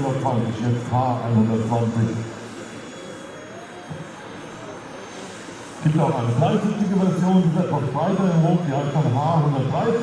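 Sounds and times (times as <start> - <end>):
distant aircraft engine drone: 0.0 - 10.0.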